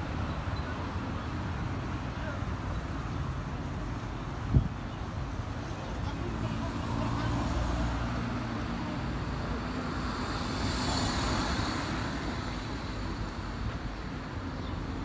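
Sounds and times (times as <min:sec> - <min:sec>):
passing car: 0:06.2 - 0:14.0.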